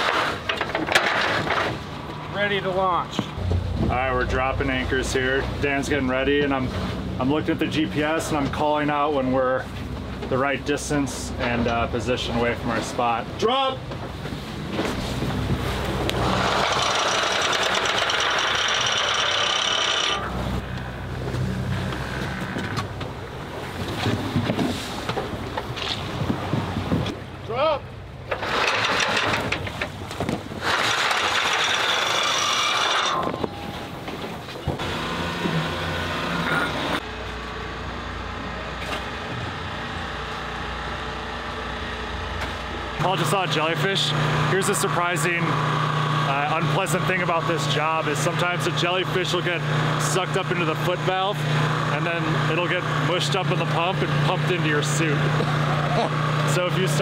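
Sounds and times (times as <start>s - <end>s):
boat engine running: 0.0s - 57.0s
anchor line running out: 15.9s - 20.6s
person shouting: 27.5s - 27.8s.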